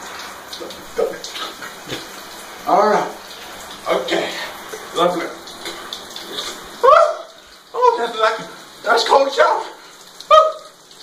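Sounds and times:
shower water spraying: 0.0s - 11.0s.

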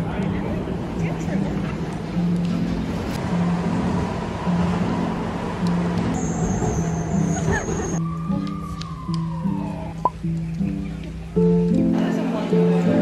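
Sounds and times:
metro train running: 0.0s - 8.0s.

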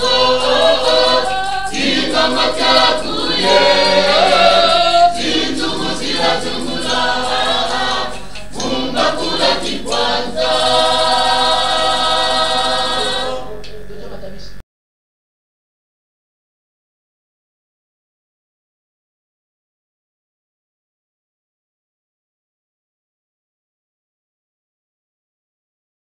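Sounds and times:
choir singing in harmony: 0.0s - 13.7s.

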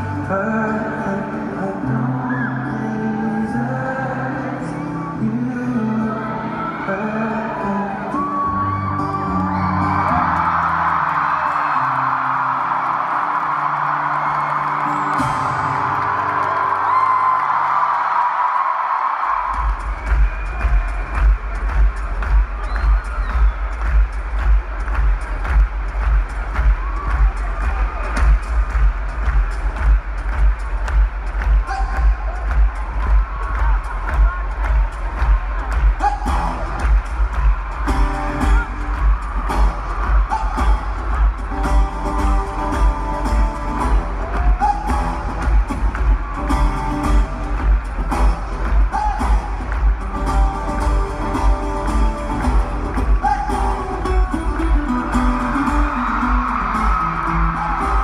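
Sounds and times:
live song low notes: 0.0s - 18.2s, 19.2s - 58.0s
crowd cheering and whooping: 2.2s - 5.0s, 6.0s - 58.0s.

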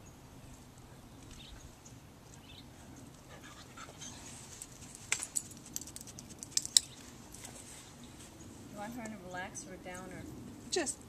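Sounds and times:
chain-link gate rattling: 4.6s - 7.0s.

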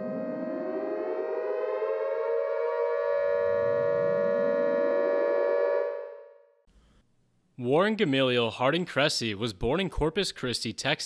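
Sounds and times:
siren-like rising tone: 0.0s - 6.6s.

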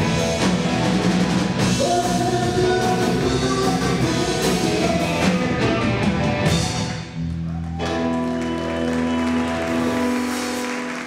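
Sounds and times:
audience applause: 7.4s - 11.0s.

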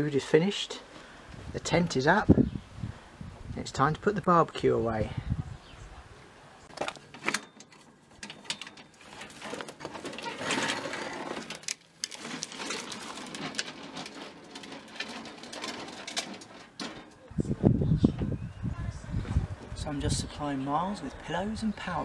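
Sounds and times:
barbecue rattling on wheels: 7.0s - 17.3s
knocks and clatter: 7.2s - 17.3s.

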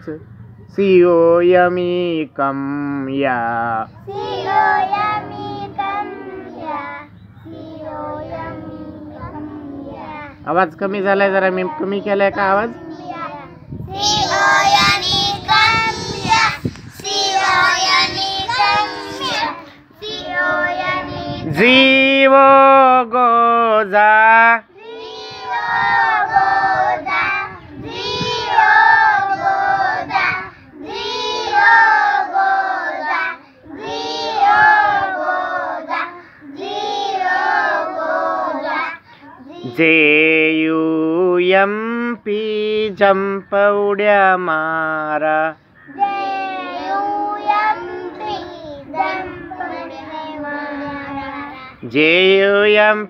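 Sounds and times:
young children singing: 4.0s - 10.4s, 11.6s - 21.6s, 24.7s - 39.8s, 45.8s - 51.8s.

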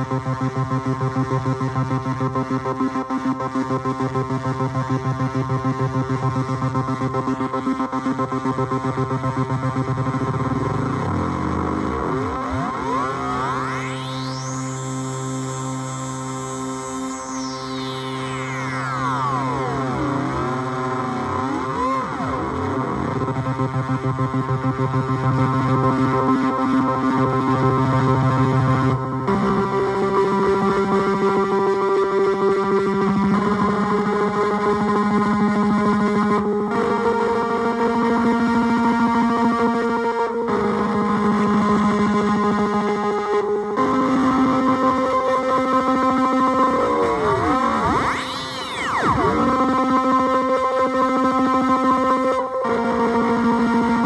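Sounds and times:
buzzy synth chord: 0.0s - 54.0s
bitcrushed synth gliding tones: 17.4s - 24.9s, 46.1s - 49.5s.

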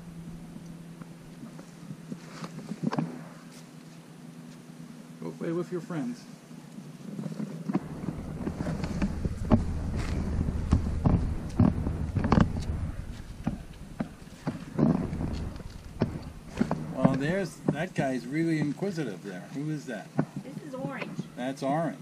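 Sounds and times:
low rumble of rubbing: 7.1s - 19.0s
sharp knocks: 7.7s - 18.8s.

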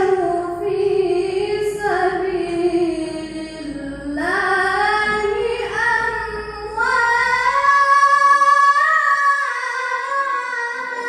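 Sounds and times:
boy reciting melodically: 0.0s - 11.0s.

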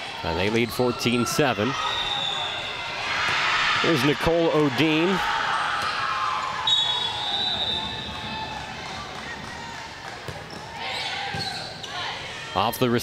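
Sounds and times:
players' voices: 0.0s - 13.0s
volleyballs thudding on floor: 9.1s - 11.5s.

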